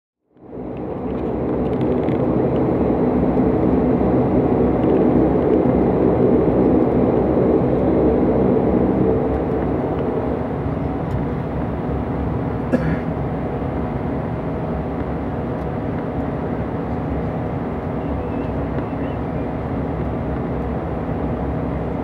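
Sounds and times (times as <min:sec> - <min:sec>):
turboprop engine hum in cabin: 0:00.2 - 0:22.0.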